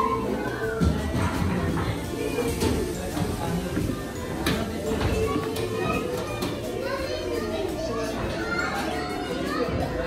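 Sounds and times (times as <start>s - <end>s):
music: 0.0s - 10.0s
young children's voices: 0.0s - 10.0s.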